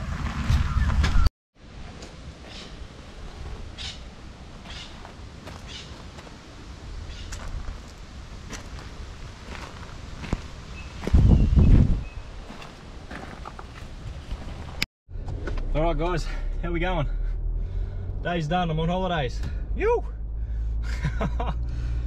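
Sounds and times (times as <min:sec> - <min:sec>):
footsteps walking: 0:04.6 - 0:06.5, 0:07.3 - 0:14.9
wind on microphone: 0:06.8 - 0:12.6.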